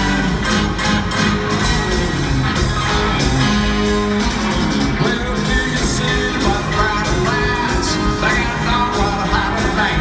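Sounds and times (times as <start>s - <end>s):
electric guitars: 0.0s - 10.0s
rock band playing live: 0.0s - 10.0s.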